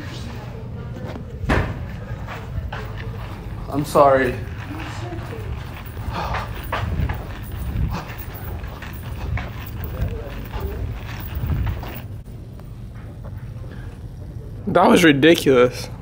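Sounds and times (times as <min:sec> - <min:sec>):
faint voices: 0:00.0 - 0:12.2
footsteps: 0:00.0 - 0:14.1.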